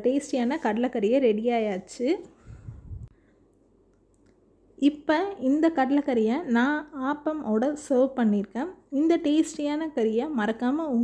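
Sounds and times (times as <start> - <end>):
woman speaking: 0.0 - 2.3, 4.8 - 11.0
faint room hiss: 0.0 - 11.0.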